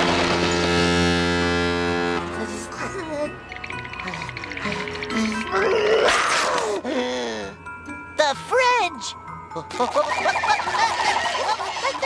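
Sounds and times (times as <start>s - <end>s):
low buzzy horn note: 0.0s - 2.7s.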